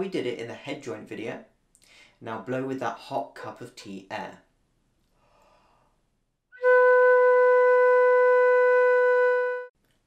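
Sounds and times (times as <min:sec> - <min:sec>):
flute playing long note: 0:06.5 - 0:09.7.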